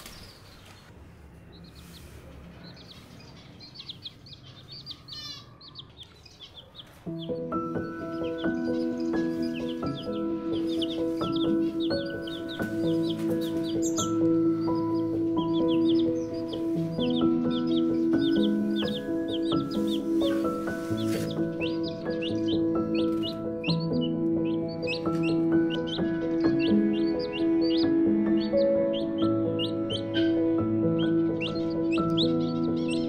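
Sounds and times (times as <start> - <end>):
chicks peeping: 0.0 - 33.0
slow sustained chords music: 7.1 - 33.0.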